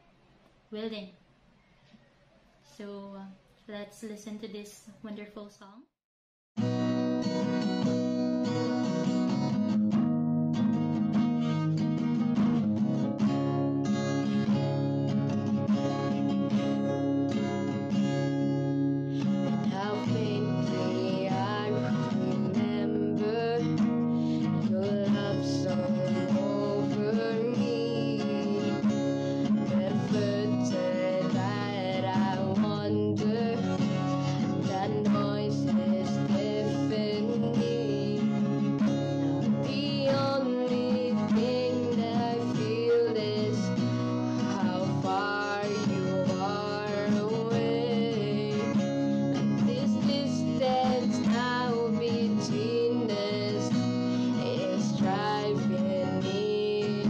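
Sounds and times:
acoustic guitar strumming: 6.6s - 57.0s
woman singing slow song: 19.2s - 57.0s.

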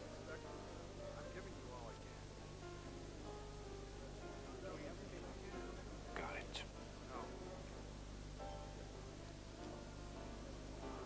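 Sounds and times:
murmur of voices: 0.0s - 11.0s
person whispering: 6.2s - 6.7s.

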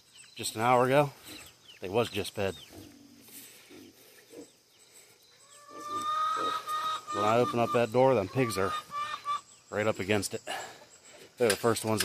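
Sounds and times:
chickens: 0.2s - 11.4s
pigs grunting: 2.5s - 4.6s, 5.5s - 9.4s
long high animal call: 5.5s - 7.8s.

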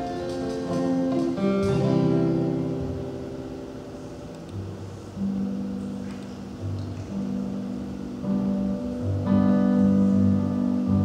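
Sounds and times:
band playing instrumental: 0.0s - 3.2s
strummed acoustic guitar: 0.0s - 4.2s.

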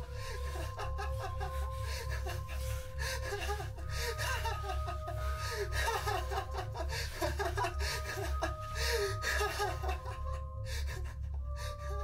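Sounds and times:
horror soundtrack drone: 0.0s - 12.0s.

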